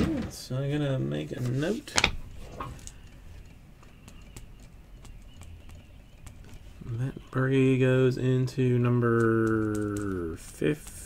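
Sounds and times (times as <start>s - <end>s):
pen clicks and taps writing: 3.8s - 6.6s.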